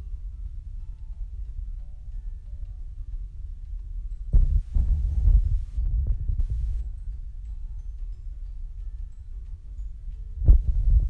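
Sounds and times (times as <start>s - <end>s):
background music with throbbing beat: 0.1s - 7.9s.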